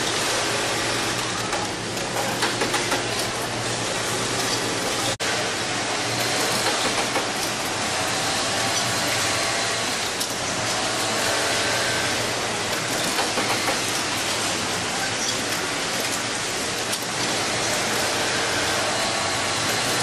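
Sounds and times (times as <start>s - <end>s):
factory machinery running: 0.0s - 20.0s.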